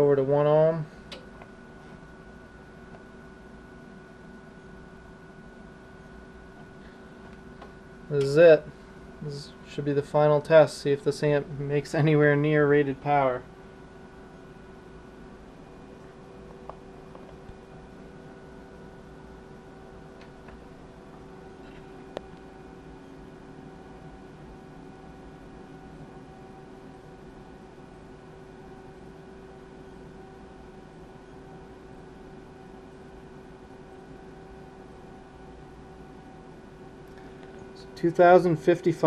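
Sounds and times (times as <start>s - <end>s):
electrical hum with whine: 0.0s - 39.0s
sharp click: 1.1s - 1.5s.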